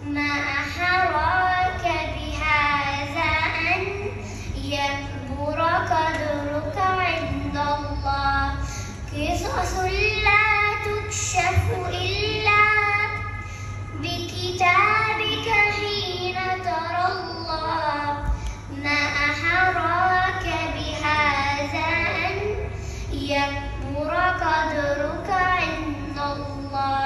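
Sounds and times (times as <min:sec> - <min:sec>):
girl singing unaccompanied: 0:00.0 - 0:27.0.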